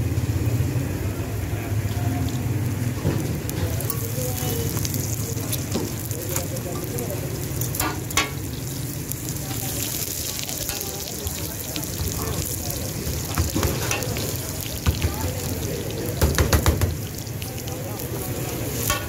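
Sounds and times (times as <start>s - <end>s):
flatbread sizzling on a griddle: 0.0s - 19.0s.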